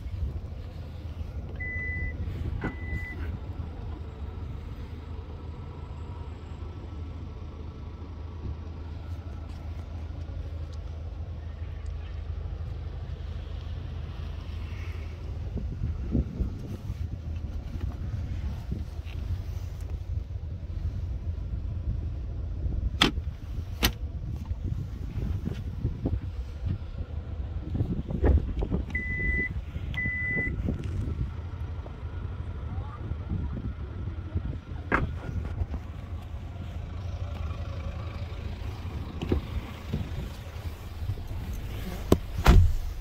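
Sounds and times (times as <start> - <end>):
wind rumble on microphone: 14.6 - 36.3, 38.8 - 43.0.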